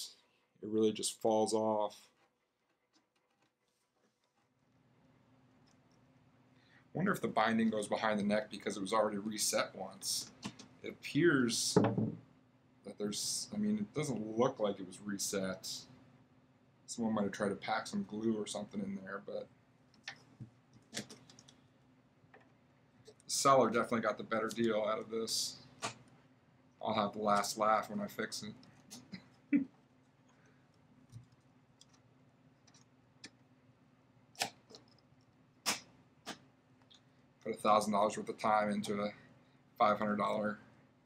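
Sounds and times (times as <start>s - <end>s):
faint low hum: 0.0s - 41.0s.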